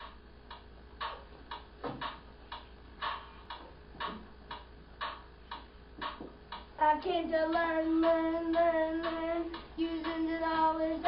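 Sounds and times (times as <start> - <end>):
clock ticking: 0.0 - 11.0.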